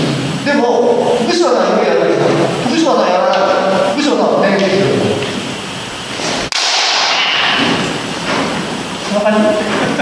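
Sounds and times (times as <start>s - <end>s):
sharp bamboo sword hit: 6.5s - 7.8s.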